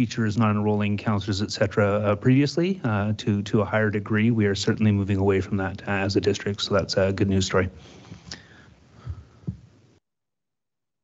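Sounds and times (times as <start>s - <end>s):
low microphone thumps: 9.0s - 9.7s.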